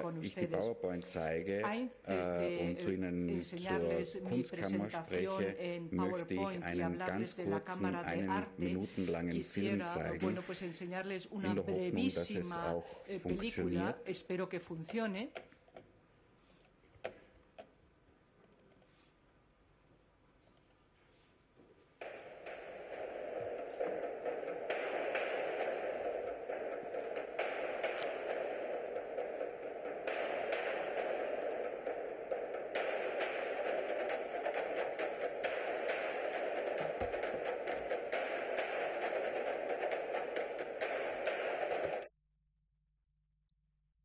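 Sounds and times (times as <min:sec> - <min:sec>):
steady film soundtrack noise: 0:00.0 - 0:10.5, 0:21.3 - 0:42.1
sharp irregular clicks and taps: 0:22.0 - 0:44.0.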